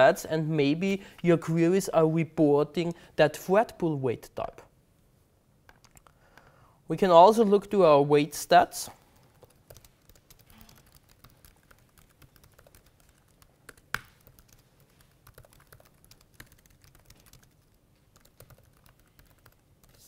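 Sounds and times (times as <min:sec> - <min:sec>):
faint typing on keyboard: 0:05.6 - 0:06.6, 0:09.0 - 0:20.0.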